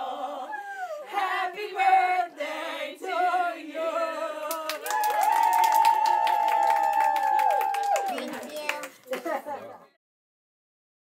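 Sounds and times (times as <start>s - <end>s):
quick clapping: 4.6s - 9.3s.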